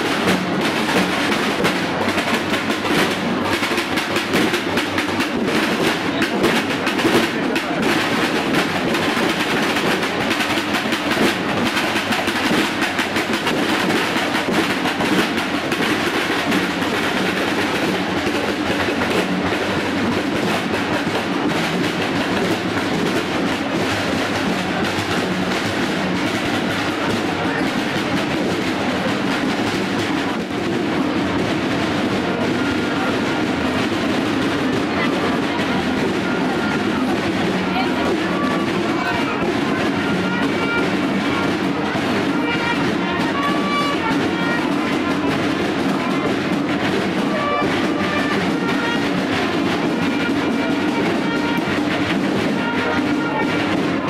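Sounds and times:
marching snare drums: 0.0 - 54.0.

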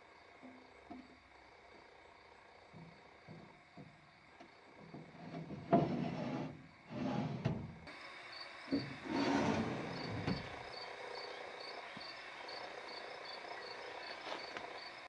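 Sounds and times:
cricket chirping: 0.0 - 15.0
thump: 9.6 - 10.5.

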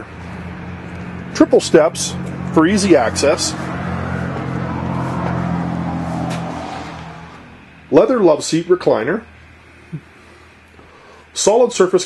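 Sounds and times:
engine humming: 0.0 - 11.4.

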